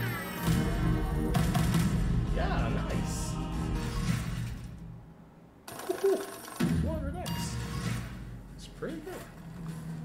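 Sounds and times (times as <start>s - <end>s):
slot machine music: 5.7s - 8.1s.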